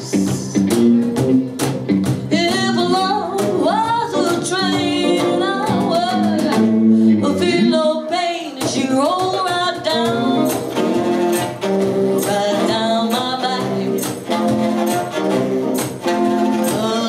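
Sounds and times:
drums: 0.0s - 17.0s
electric guitar: 0.0s - 17.0s
woman singing: 2.2s - 17.0s.

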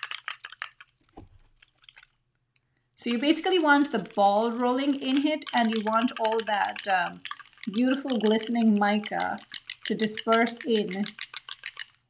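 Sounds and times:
ball rattling in spray bottle: 0.0s - 2.2s, 3.1s - 12.0s.

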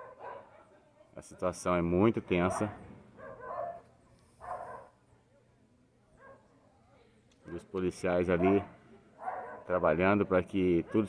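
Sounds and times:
distant dog barking: 0.0s - 0.6s, 2.4s - 5.0s, 8.3s - 9.7s, 10.8s - 11.0s.

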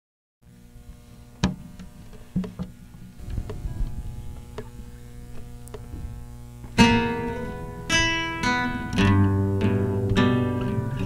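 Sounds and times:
low steady hum: 0.4s - 11.0s.

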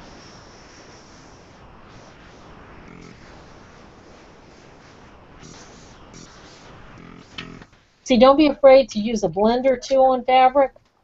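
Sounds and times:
airbrush hissing: 0.0s - 8.5s.

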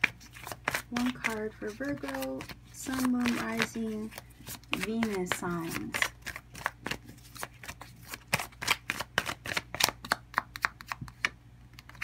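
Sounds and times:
cards shuffling: 0.0s - 12.0s.

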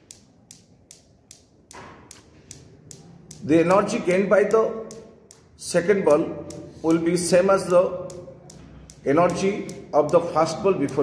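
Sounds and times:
steel balls clicking: 0.0s - 11.0s.

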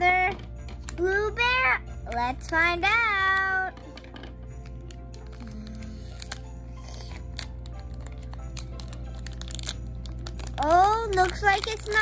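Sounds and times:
soft background music: 0.0s - 12.0s
foil wrapper crinkling and tearing: 4.1s - 12.0s.

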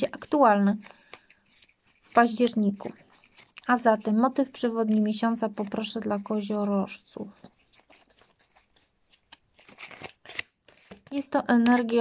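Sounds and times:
cards being shuffled: 0.0s - 12.0s.

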